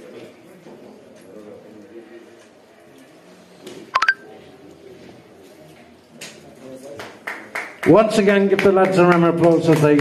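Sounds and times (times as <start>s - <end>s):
faint murmuring voices: 0.0s - 7.6s
double electronic beep: 4.0s - 4.2s.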